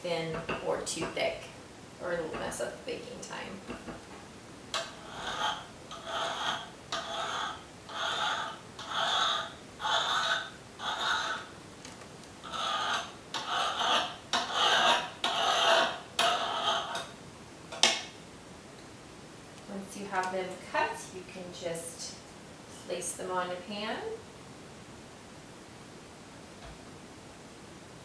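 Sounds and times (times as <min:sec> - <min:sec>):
knife rasping through dough: 0:04.8 - 0:11.5, 0:12.4 - 0:17.1.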